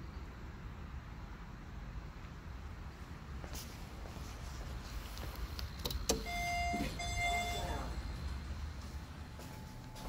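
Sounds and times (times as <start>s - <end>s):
elevator electronic beeps: 6.1s - 8.1s.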